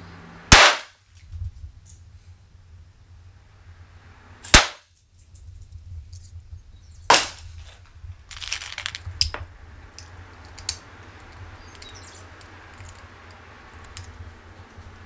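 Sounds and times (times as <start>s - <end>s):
pistol shots: 0.5s - 1.0s, 4.5s - 4.9s, 7.1s - 7.4s
gun handling clatter and clicks: 7.6s - 14.9s.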